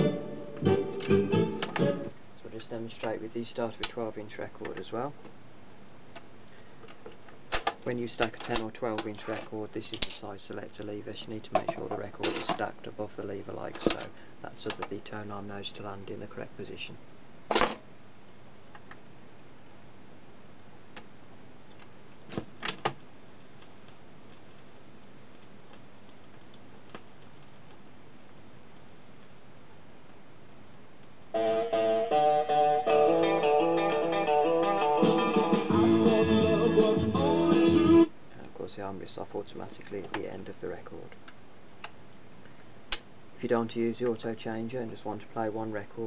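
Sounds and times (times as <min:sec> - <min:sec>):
record player hiss: 0:00.0 - 0:46.0.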